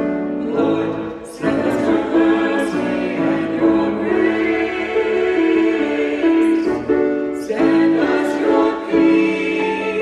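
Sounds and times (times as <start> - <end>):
choir singing in harmony: 0.0 - 10.0.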